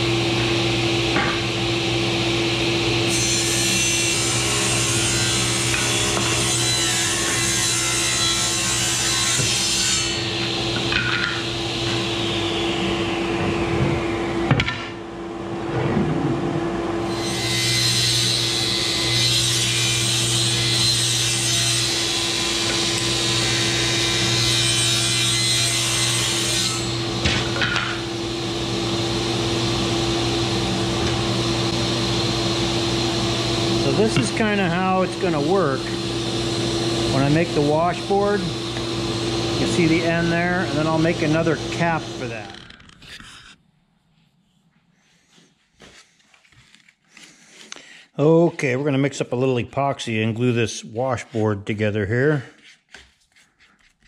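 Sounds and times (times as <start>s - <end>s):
table saw cutting wood: 0.0s - 43.6s.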